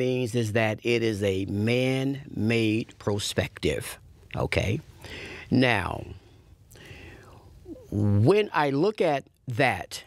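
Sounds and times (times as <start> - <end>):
man speaking: 0.0 - 6.2, 7.7 - 10.0
man breathing in: 5.0 - 5.5, 6.2 - 7.5.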